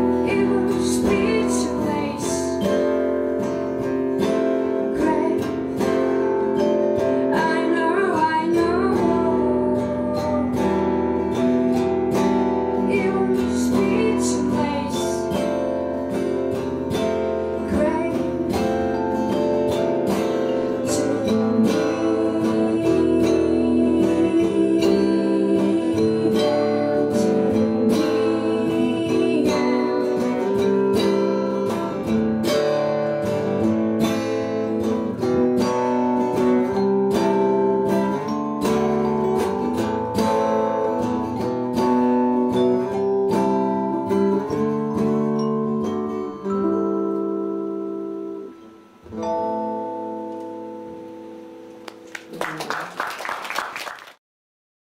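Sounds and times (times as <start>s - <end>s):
woman singing: 0.0s - 3.4s, 4.2s - 16.2s, 17.5s - 19.5s, 20.1s - 33.4s, 37.2s - 45.3s
acoustic guitar: 0.0s - 54.2s.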